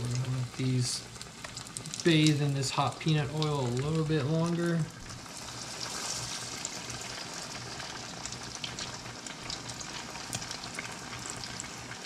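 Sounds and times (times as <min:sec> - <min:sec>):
food deep-frying in oil: 0:00.0 - 0:12.0.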